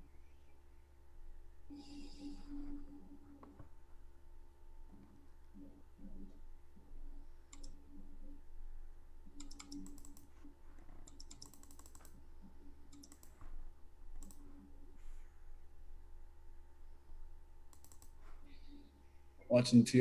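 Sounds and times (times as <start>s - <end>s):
low steady hum: 0.0s - 20.0s
computer keyboard keys clicking: 7.5s - 7.8s, 9.3s - 10.3s, 11.0s - 12.2s, 12.9s - 13.4s, 14.2s - 14.5s, 17.7s - 18.2s.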